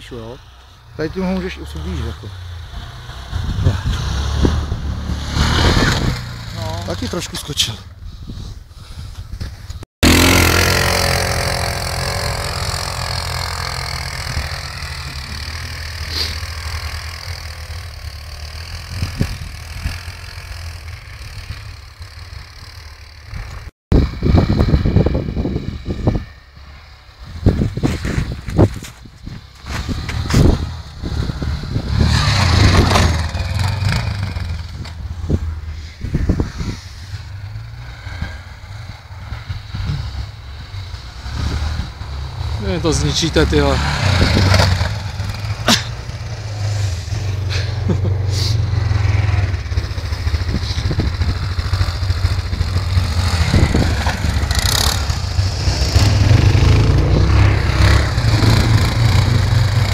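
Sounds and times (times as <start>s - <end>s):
quad bike engines revving: 0.0s - 59.9s.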